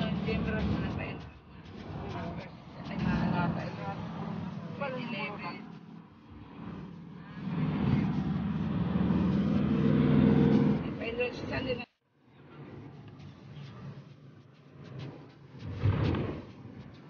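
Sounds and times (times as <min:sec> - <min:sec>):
people talking: 0:00.0 - 0:05.8, 0:10.7 - 0:11.9
loud steady engine drone: 0:00.0 - 0:16.8
car engine and road noise: 0:00.0 - 0:17.0.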